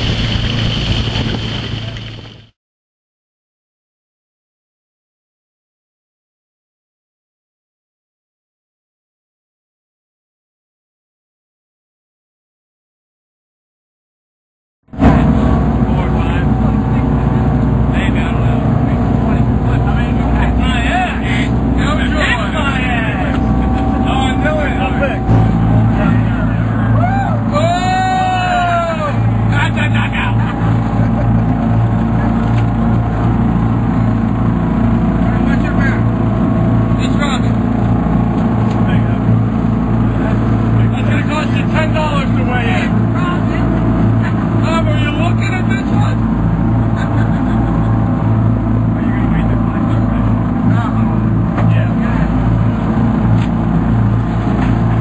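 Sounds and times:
boat engine humming: 0:00.0 - 0:02.6, 0:14.9 - 0:55.0.

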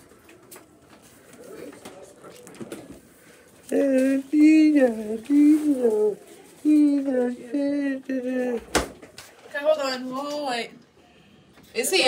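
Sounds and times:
pigeon cooing: 0:03.7 - 0:08.8.

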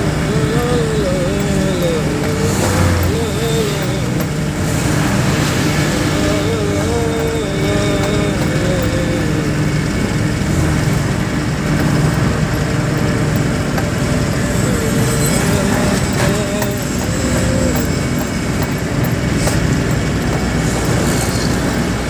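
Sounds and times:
truck engine and road noise: 0:00.0 - 0:22.0
wavering voice-like tone: 0:14.4 - 0:18.3.

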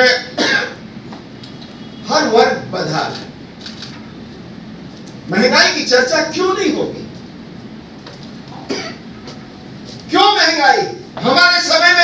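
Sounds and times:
low room noise: 0:00.0 - 0:12.0
person coughing: 0:00.3 - 0:00.8, 0:08.6 - 0:09.1.

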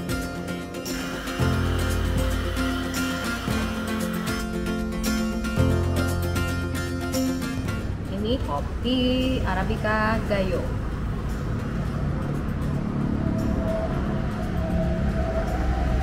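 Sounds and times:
music with bass and beat: 0:00.0 - 0:07.9
woman's voice: 0:08.1 - 0:10.8.

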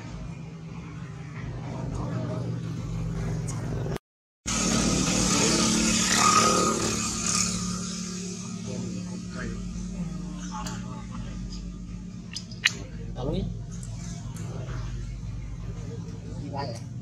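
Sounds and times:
voices: 0:00.0 - 0:04.0, 0:04.6 - 0:17.0
vehicle engine passing by: 0:00.0 - 0:16.8.

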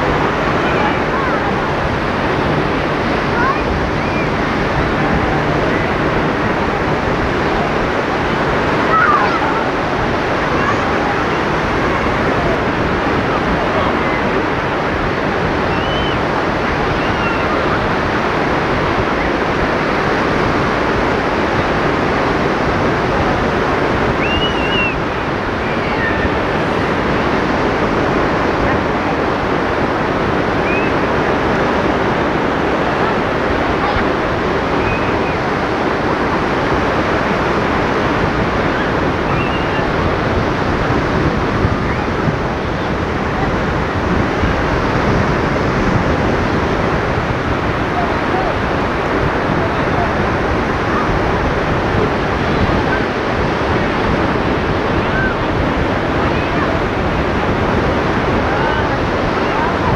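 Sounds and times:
waves breaking on a beach: 0:00.0 - 0:59.9.

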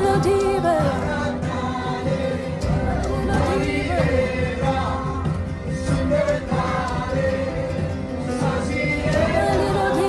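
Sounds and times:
cajon beat: 0:00.0 - 0:10.0
voices singing together: 0:00.0 - 0:10.0.

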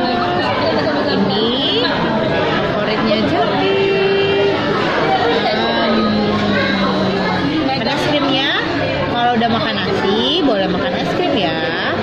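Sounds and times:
chatter of overlapping voices: 0:00.0 - 0:12.0.

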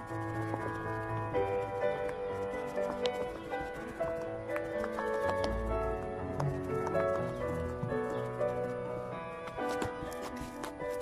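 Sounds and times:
soft melodic music: 0:00.0 - 0:11.0.

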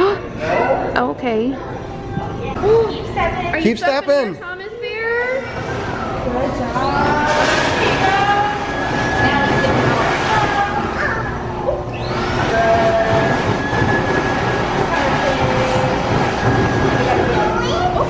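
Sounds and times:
stuffing machine blower running: 0:05.3 - 0:18.0.

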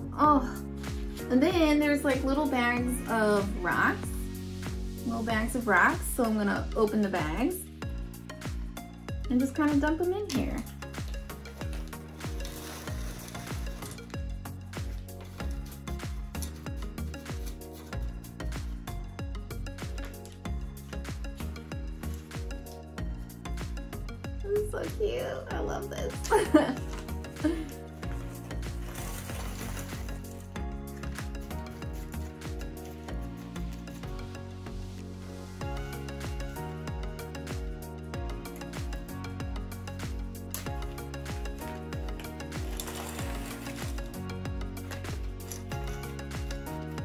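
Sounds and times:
background music with steady beat: 0:00.0 - 0:47.0
rocks poured into a pot: 0:28.0 - 0:30.4, 0:42.3 - 0:44.2
fingers spreading rocks: 0:42.3 - 0:44.2.

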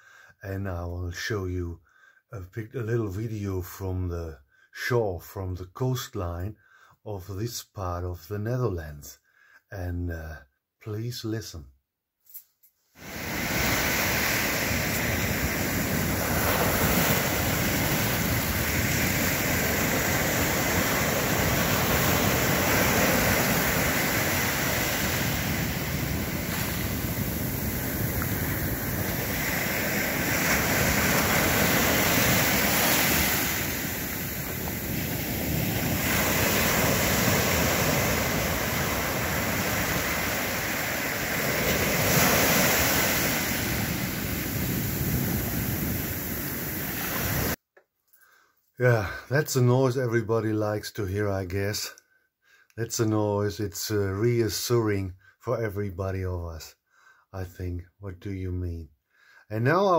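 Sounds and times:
small waves breaking on shore: 0:13.0 - 0:47.6
wind rumbling on microphone: 0:13.1 - 0:47.6.

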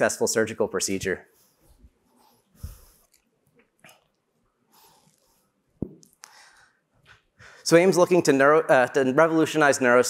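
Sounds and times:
man breathing softly: 0:01.5 - 0:03.1, 0:06.2 - 0:07.7.

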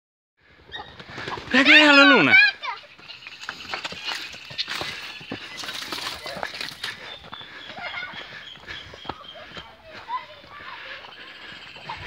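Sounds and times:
footsteps crunching on dry leaves: 0:02.9 - 0:07.1.

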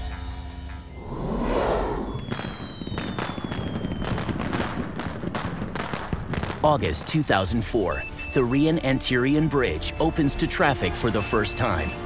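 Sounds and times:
firework whistle sliding down: 0:00.9 - 0:04.2
fireworks bangs and crackles: 0:02.1 - 0:07.6.

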